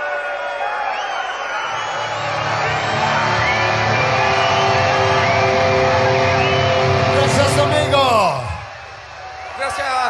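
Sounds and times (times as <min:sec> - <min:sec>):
rock band playing live: 0:03.0 - 0:08.6.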